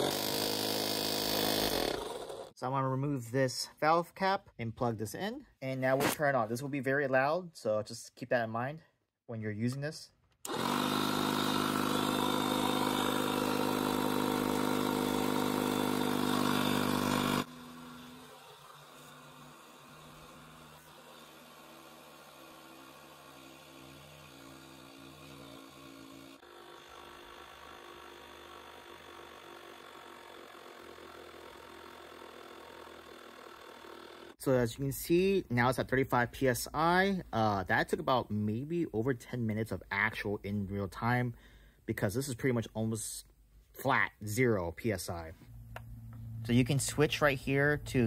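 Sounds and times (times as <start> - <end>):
tire inflator compressor running: 0.0 - 2.6, 10.4 - 34.4.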